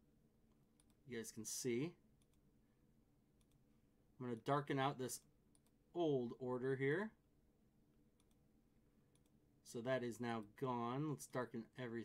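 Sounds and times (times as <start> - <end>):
computer mouse clicks: 0.5 - 1.0, 2.2 - 2.4, 3.4 - 3.7, 5.2 - 5.8, 8.2 - 8.4, 9.1 - 9.4.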